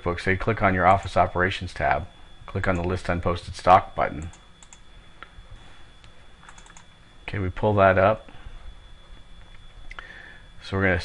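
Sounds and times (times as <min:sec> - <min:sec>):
high-pitched whine: 0:00.0 - 0:11.0
low hum: 0:00.0 - 0:11.0
computer mouse and keyboard clicks: 0:06.4 - 0:06.9.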